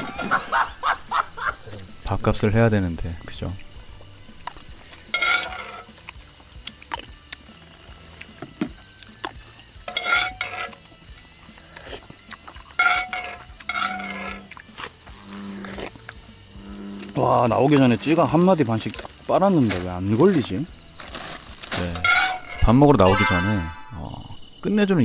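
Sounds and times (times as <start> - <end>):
metal spoon scraping a bowl: 3.6 - 6.2, 9.6 - 16.1, 20.4 - 24.0.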